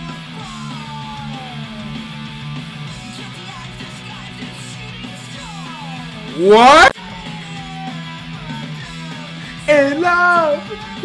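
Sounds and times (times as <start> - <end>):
punk rock song with electric guitar: 0.0 - 11.0.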